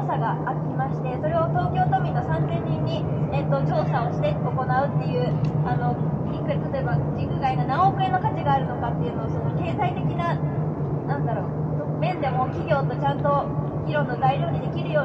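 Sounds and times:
woman making a speech: 0.0s - 10.4s, 11.1s - 15.0s
steady low hum: 0.0s - 15.0s.

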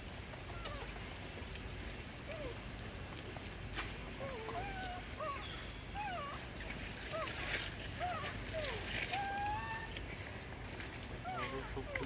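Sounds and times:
baby monkey whimpering calls: 0.5s - 0.9s, 8.0s - 10.0s, 11.2s - 12.0s.

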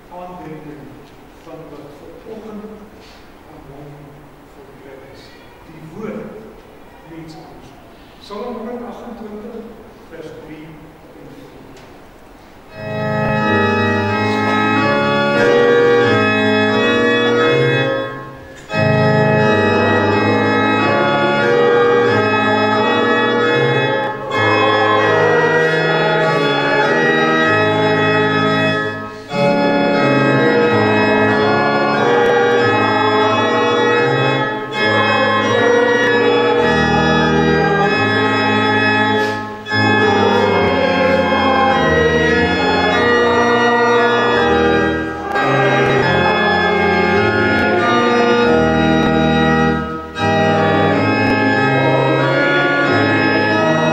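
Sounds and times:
church organ playing a hymn: 0.0s - 53.9s.

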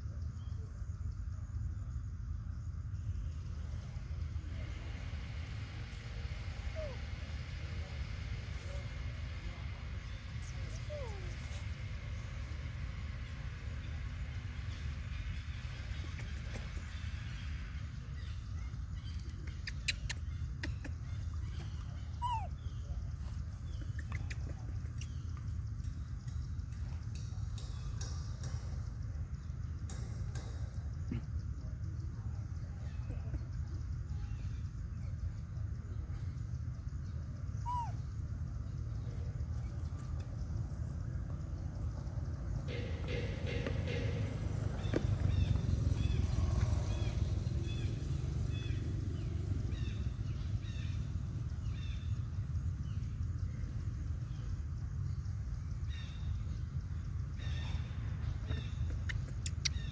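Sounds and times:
steady low rumble: 0.0s - 59.9s
baby monkey squeak: 22.2s - 22.6s, 37.6s - 38.0s.

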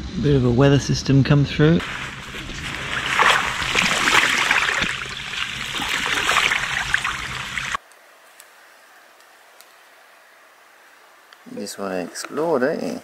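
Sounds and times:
water pouring into a puddle: 1.8s - 7.8s.

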